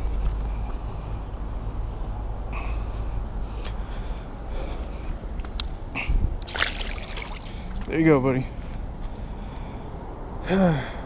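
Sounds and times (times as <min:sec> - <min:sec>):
fish splashing into water: 0:06.4 - 0:07.6.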